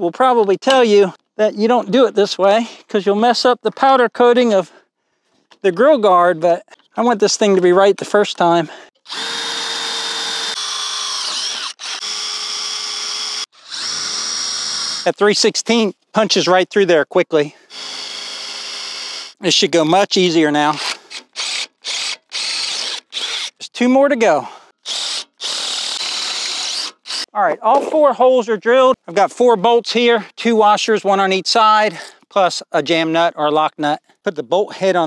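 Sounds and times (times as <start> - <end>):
cordless drill boring through steel: 9.0 - 15.1, 17.7 - 19.4, 20.6 - 23.6, 24.7 - 27.4.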